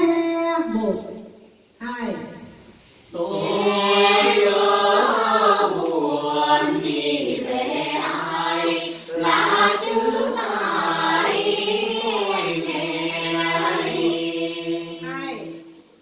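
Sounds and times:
men singing unaccompanied: 3.2 - 15.6.

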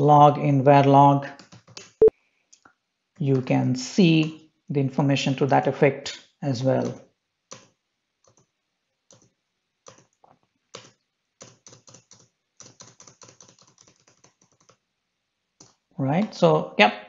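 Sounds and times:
keyboard typing: 1.4 - 2.1, 6.8 - 8.5, 9.1 - 14.8.

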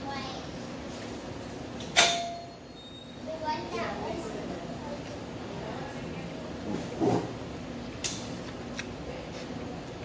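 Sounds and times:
sharp metallic clang: 1.9 - 2.6.

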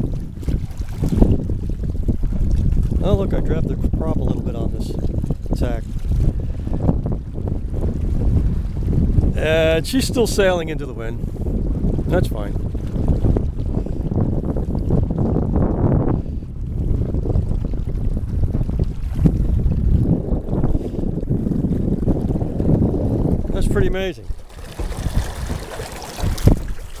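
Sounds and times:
water rushing along hull: 0.0 - 27.0
wind buffeting microphone: 0.0 - 27.0.

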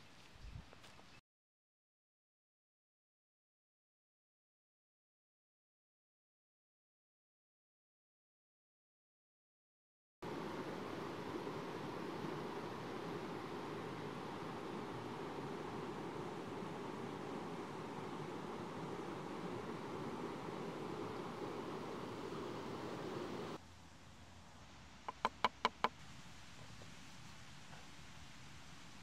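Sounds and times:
stream rushing: 10.2 - 23.6.

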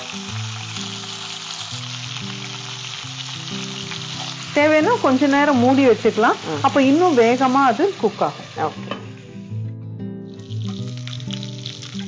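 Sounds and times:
spatula turning food in pan: 0.0 - 9.2
chicken sizzling in oil: 0.0 - 9.3, 10.3 - 12.0
soft background music: 0.0 - 12.0.

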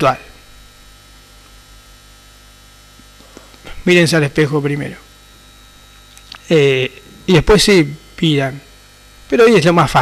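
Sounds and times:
man talking: 0.0 - 0.4, 3.7 - 5.1, 6.4 - 8.7, 9.3 - 10.0
electrical mains hum: 0.0 - 10.0.

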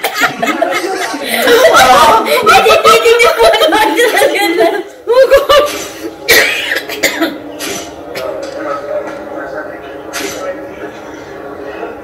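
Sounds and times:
people laughing: 0.0 - 6.2
sharp cough-like burst: 6.3 - 7.8.

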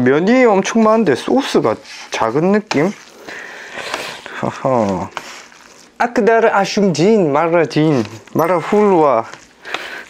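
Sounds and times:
noodles stirred with chopsticks: 0.3 - 10.0.

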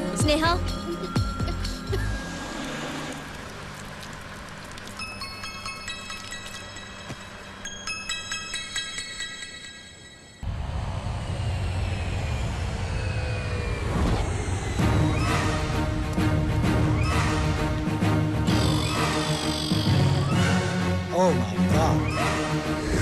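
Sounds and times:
soft music with chiming tones: 0.2 - 2.2, 5.0 - 10.4.

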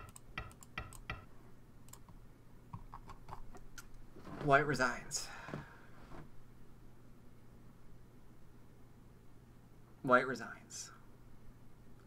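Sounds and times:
computer mouse clicks: 0.0 - 1.2, 1.9 - 3.9
faint low hum: 0.0 - 12.0.

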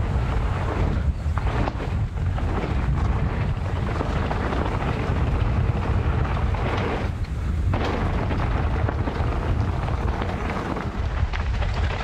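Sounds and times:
bike tyres on gravel: 0.0 - 12.0
wind rumble on microphone: 0.0 - 12.0.

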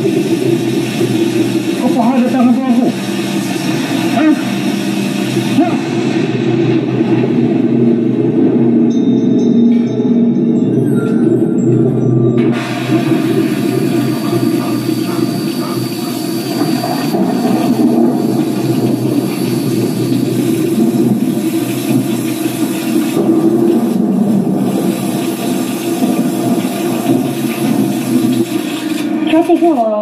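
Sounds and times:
low drone: 0.0 - 30.0
television rushing sound: 0.0 - 30.0.

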